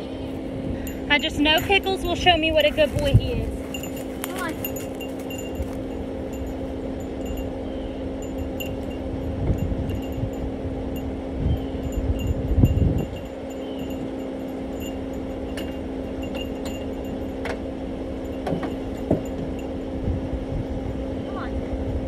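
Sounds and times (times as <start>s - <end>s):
low rumbling: 0.0s - 22.0s
steady low hum: 0.0s - 22.0s.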